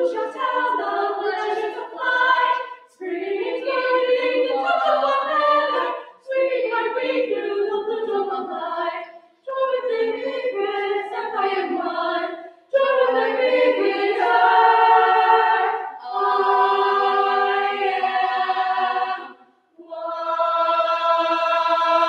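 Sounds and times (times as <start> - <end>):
girls' choir singing a cappella: 0.0 - 22.0.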